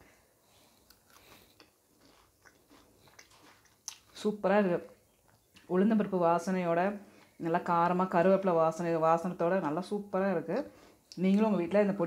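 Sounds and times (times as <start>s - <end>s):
faint chewing: 0.4s - 5.7s.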